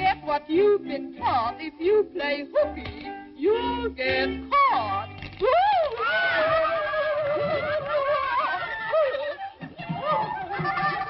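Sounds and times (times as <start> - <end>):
instrumental music: 0.0 - 6.0
person singing: 0.0 - 11.0.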